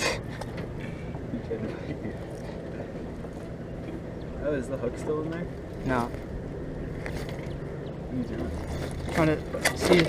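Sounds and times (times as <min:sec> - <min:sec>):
low engine drone: 0:00.0 - 0:10.0.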